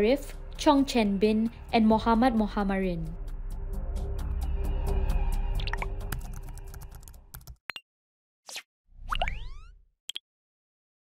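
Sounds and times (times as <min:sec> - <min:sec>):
background music track: 0:00.0 - 0:07.5
pop with rising tones: 0:08.5 - 0:09.8.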